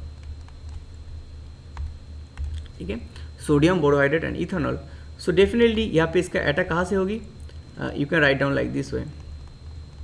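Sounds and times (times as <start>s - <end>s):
steady low hum: 0.0s - 10.0s
man speaking: 2.7s - 9.2s.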